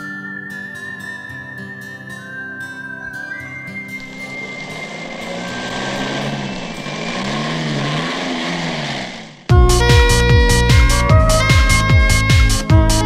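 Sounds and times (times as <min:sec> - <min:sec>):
jeep engine revving: 0:04.0 - 0:09.5.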